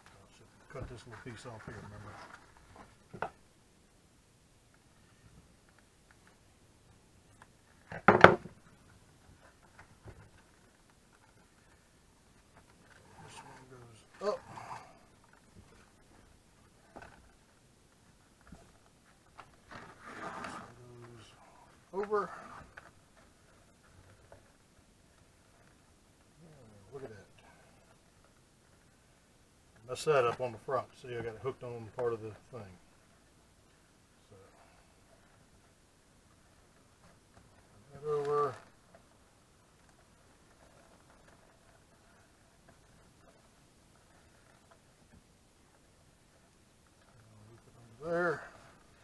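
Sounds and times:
man's wordless voice: 0.0 - 2.2, 13.1 - 14.9, 20.6 - 22.6, 29.8 - 32.8, 37.8 - 38.6, 47.2 - 48.6
leather handling on workbench: 19.5 - 21.0.

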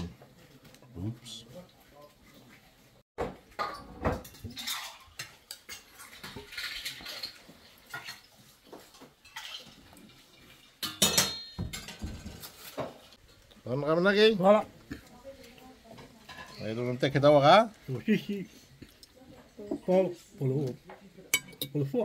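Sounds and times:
tongs and plates clattering: 10.6 - 13.1, 21.3 - 22.0.

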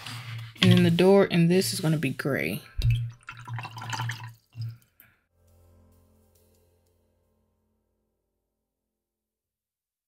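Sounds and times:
brush swished in water jar: 0.0 - 2.5
quiet background music: 0.0 - 3.2, 5.4 - 8.2.

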